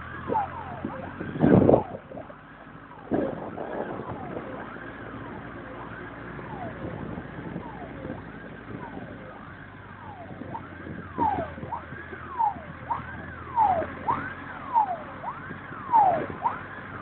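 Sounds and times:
fire engine sirens wailing: 0:00.0 - 0:17.0
road noise: 0:00.0 - 0:17.0
vehicle engines rumbling: 0:00.0 - 0:17.0.

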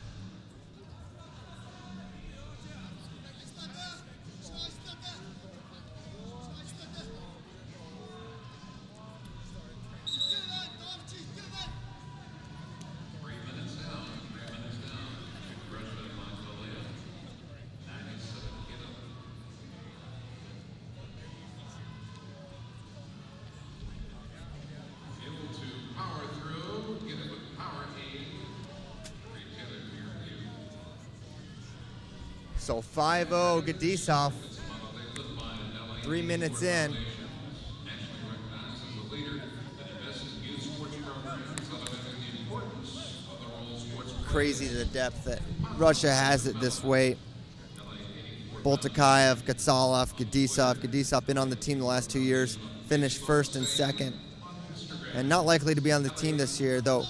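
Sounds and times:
crowd and coaches voices: 0:00.0 - 0:57.0.

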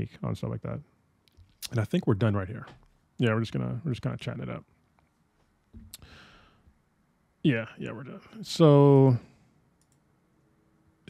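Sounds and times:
faint steady hum: 0:00.0 - 0:11.0
person speaking: 0:01.6 - 0:04.7.

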